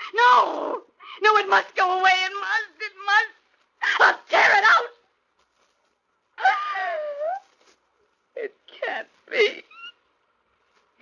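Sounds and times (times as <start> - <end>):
woman wailing: 6.4 - 7.5.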